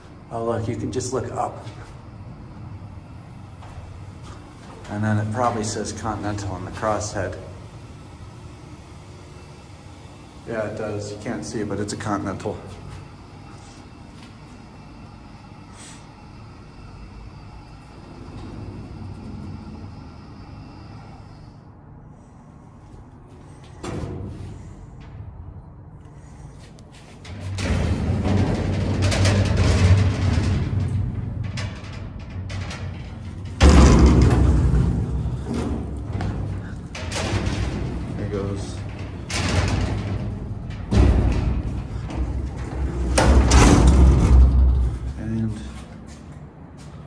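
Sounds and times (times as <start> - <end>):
low metallic rumbling: 0.0 - 46.9
elevator machine hum: 0.0 - 47.0
heavy metallic bang: 27.6 - 45.7.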